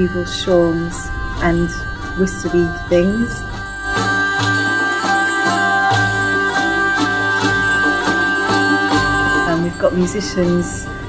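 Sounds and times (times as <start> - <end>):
hurdy-gurdy: 0.0 - 11.0
oud: 0.0 - 11.0
plucked string instrument: 0.0 - 11.0
steady high drone: 0.0 - 11.0.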